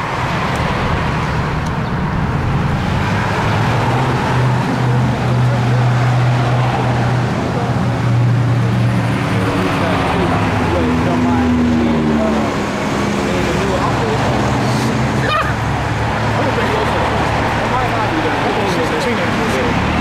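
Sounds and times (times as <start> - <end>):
heavy vehicle engine hum: 0.0 - 20.0
road traffic passing: 0.0 - 20.0.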